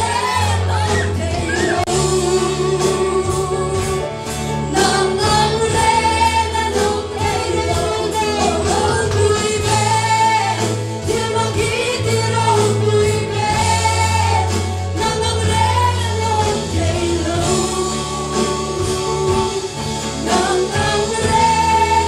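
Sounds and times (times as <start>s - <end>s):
congregation singing: 0.0s - 22.0s.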